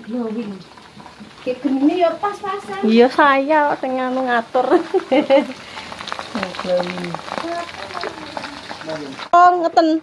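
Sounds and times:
oil sizzling and crackling: 0.0s - 10.0s.

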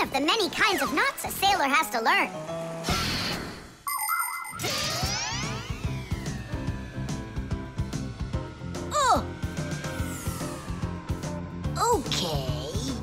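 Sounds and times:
background music with falling tone: 0.7s - 13.0s
bright ringing chimes: 3.9s - 5.0s.

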